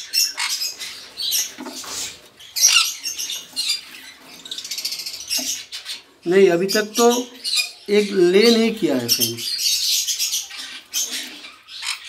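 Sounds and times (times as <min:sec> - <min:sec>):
parrots chattering and squawking: 0:00.0 - 0:12.0.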